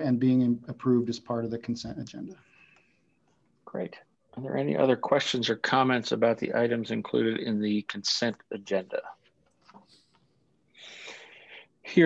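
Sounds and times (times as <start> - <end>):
person drawing a breath: 10.8 - 11.8.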